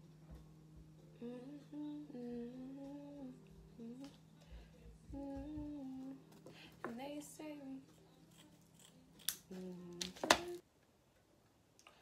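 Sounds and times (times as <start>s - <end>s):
woman humming: 1.2s - 8.0s, 9.4s - 10.6s
scissors snipping: 8.3s - 10.6s.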